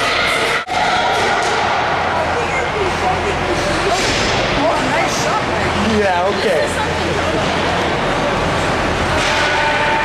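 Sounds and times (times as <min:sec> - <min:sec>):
ice rink crowd din: 0:00.0 - 0:10.0.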